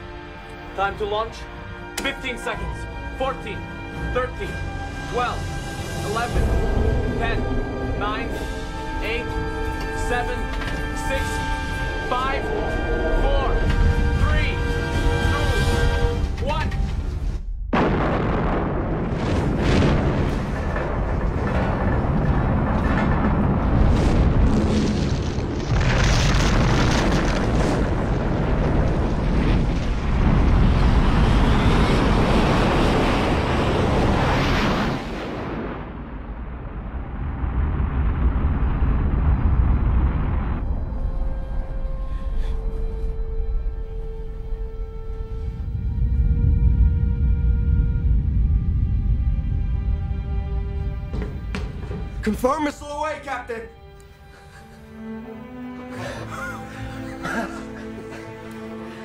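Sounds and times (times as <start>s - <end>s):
orchestral score: 0.0s - 35.8s, 40.6s - 59.0s
booms: 16.9s - 42.6s.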